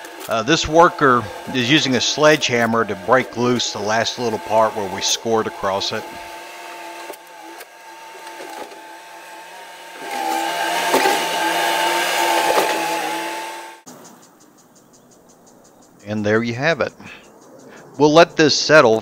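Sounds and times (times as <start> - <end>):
diesel engine whining: 0.0 - 13.9
knocks and scraping: 10.0 - 13.6.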